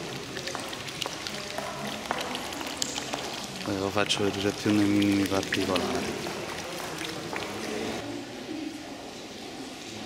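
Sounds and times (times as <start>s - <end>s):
fountains splashing and trickling: 0.0s - 10.0s.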